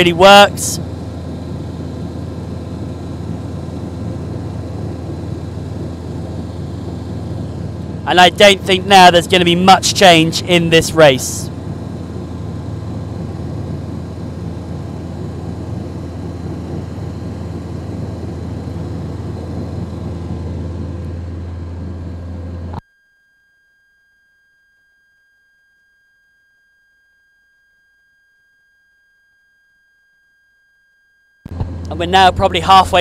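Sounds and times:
low rumble and hiss: 0.0 - 22.8, 31.5 - 33.0.

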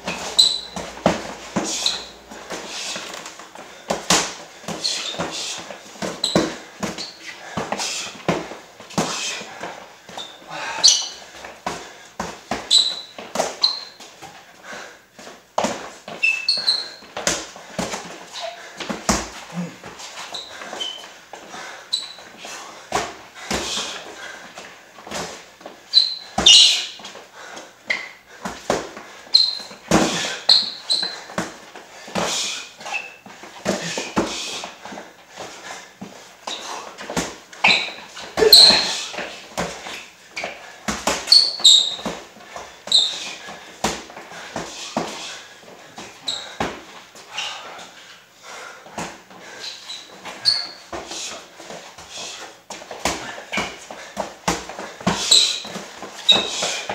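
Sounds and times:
boxing gloves punching: 0.0 - 9.7, 36.5 - 40.0, 52.0 - 56.9
sneakers squeaking on gym floor: 0.0 - 14.4, 15.2 - 27.2, 27.8 - 48.1, 48.9 - 56.9
shuffling footsteps: 0.0 - 56.9.

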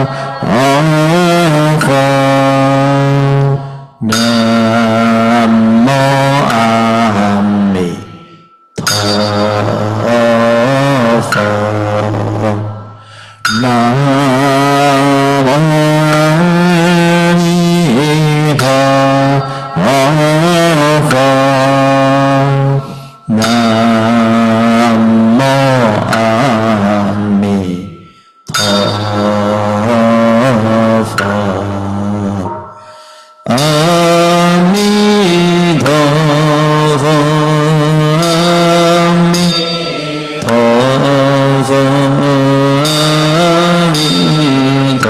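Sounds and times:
voices chanting slowly: 0.0 - 45.0.

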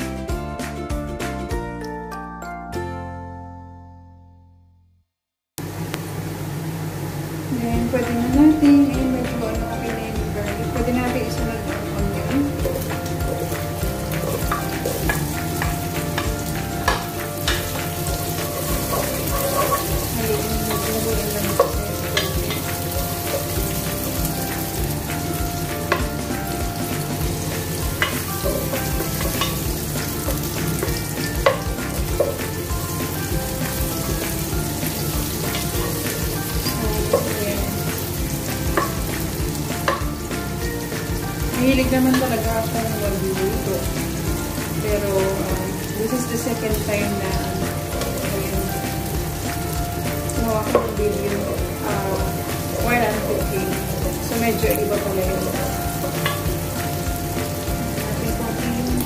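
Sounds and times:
onion and garlic sizzling in butter: 5.6 - 59.0
wooden spatula scraping a pot: 12.7 - 24.8.

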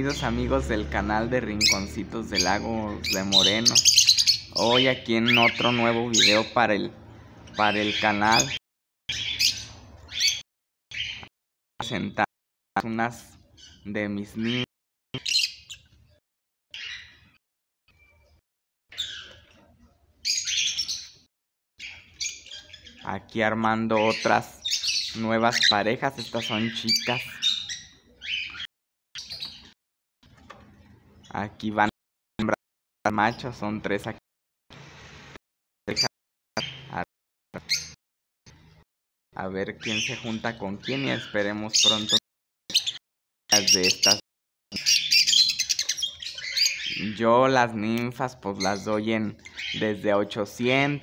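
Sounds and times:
cockatiels calling: 1.6 - 6.6, 7.4 - 11.3, 16.8 - 17.4, 18.9 - 19.5, 20.2 - 23.1, 23.9 - 29.7, 37.6 - 38.0, 39.8 - 47.2, 48.6 - 50.0.

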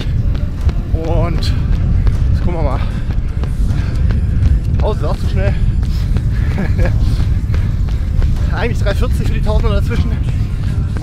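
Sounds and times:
runner breathing: 0.0 - 11.0
running footsteps: 0.0 - 11.0
wind rumble on microphone: 0.0 - 11.0.

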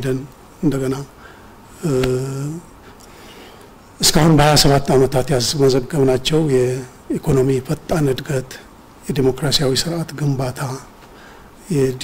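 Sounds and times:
man's hesitation sound: 1.8 - 2.7.

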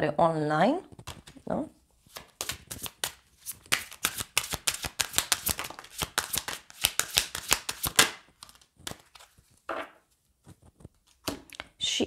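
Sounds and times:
cards being shuffled: 0.9 - 1.4, 2.0 - 9.6.

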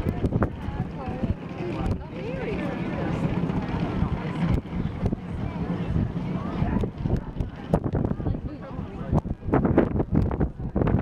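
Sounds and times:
faint chatter of people: 0.0 - 11.0
wind rumbling on microphone: 0.0 - 11.0.

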